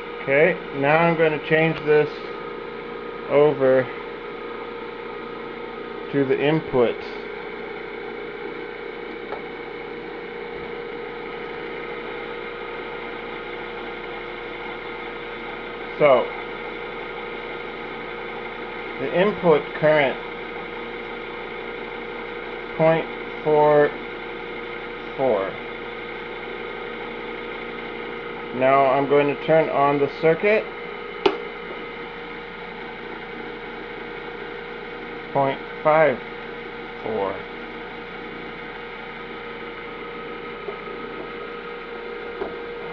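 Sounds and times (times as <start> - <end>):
electric motor humming: 0.0 - 42.9.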